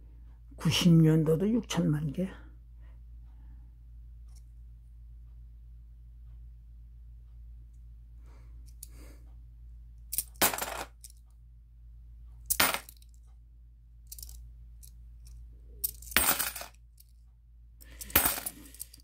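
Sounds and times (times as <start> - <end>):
coins clinking: 10.1 - 11.2, 12.5 - 13.2, 14.1 - 14.4, 15.8 - 17.1, 17.8 - 19.0.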